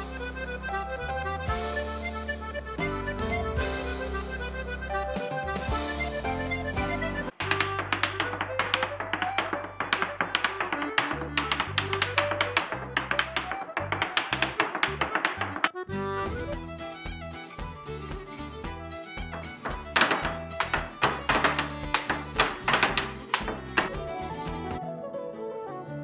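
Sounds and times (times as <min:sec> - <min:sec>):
folk dance tune: 0:00.0 - 0:26.0
hard-shoe dance taps: 0:07.3 - 0:15.9, 0:19.1 - 0:24.8.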